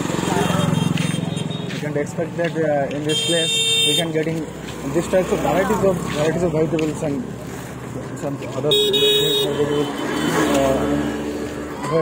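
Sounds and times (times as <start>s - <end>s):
busy street market noise: 0.0s - 12.0s.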